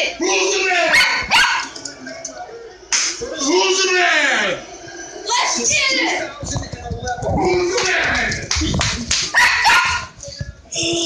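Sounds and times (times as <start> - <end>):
dog barking: 0.9 - 1.7, 9.3 - 10.1.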